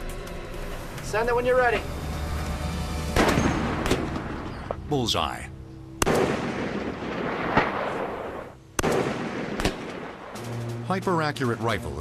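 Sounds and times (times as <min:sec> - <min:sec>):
rifle shots with rolling report: 0:06.0 - 0:10.7
sharp crack: 0:06.0 - 0:10.8.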